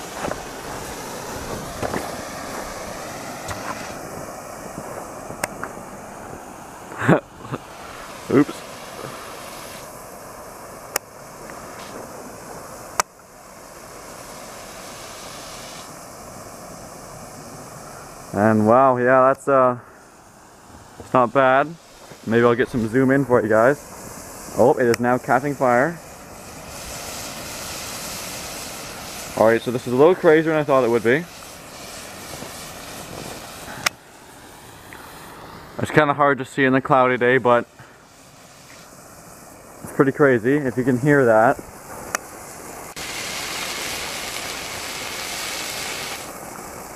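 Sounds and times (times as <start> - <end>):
smoke bomb hissing: 0.0 - 46.9.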